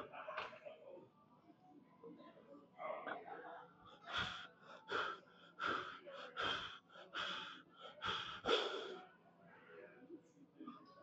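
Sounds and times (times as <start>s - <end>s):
sharp forceful breaths: 3.9s - 9.0s.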